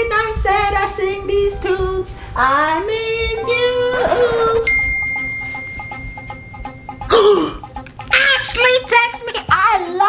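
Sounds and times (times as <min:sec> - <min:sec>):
faint background music: 0:00.0 - 0:10.0
high-pitched electronic tone: 0:04.7 - 0:07.2.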